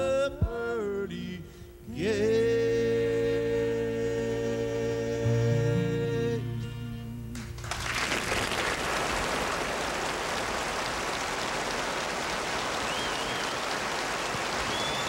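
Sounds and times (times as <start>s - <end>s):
bluegrass band song: 0.0s - 10.2s
audience applauding: 7.4s - 15.0s.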